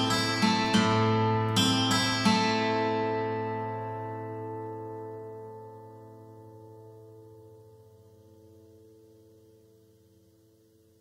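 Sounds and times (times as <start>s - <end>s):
acoustic guitar chord ringing: 0.0s - 11.0s.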